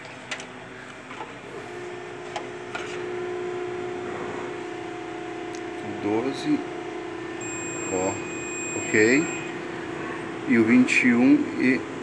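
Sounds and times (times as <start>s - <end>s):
multimeter continuity beep: 7.4s - 9.6s.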